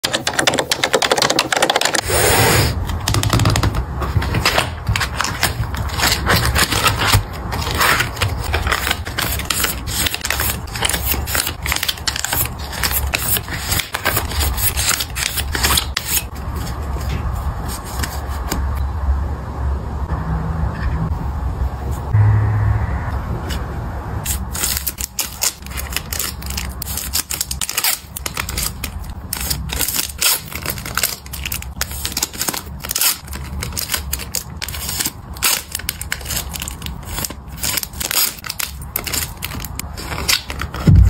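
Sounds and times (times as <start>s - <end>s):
low steady hum: 16.3s - 26.6s, 40.8s - 41.0s.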